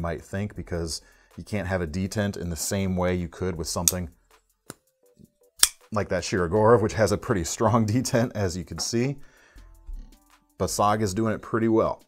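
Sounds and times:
knife blade snapping open: 0:05.6 - 0:05.8.

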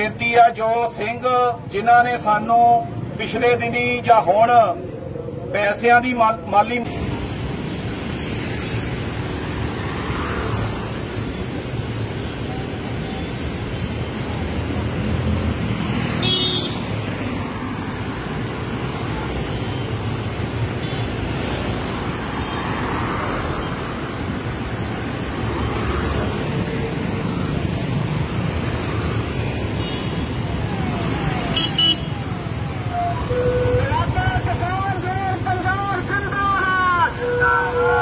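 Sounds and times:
road traffic rumble: 0:00.0 - 0:38.0.

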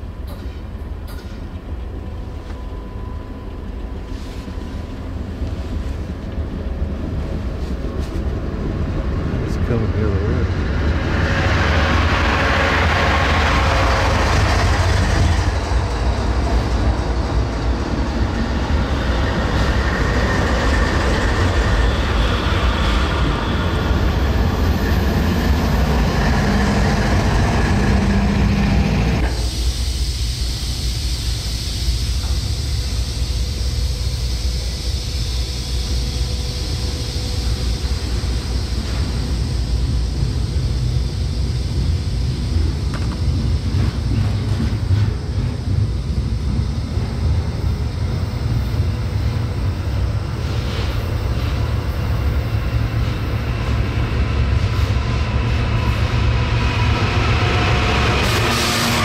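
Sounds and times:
train wheels rumbling and clattering: 0:00.0 - 0:59.0.

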